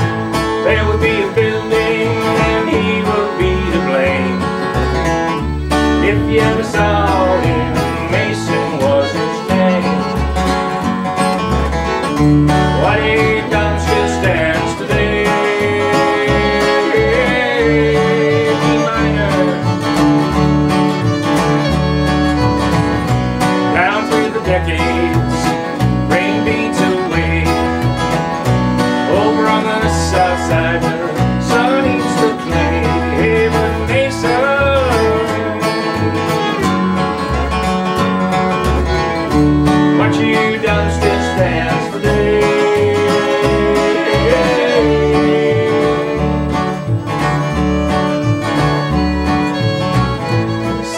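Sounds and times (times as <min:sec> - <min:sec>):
fiddle playing lead: 0:00.0 - 0:50.9
strummed acoustic guitar: 0:00.0 - 0:50.9
upright bass: 0:00.0 - 0:50.9.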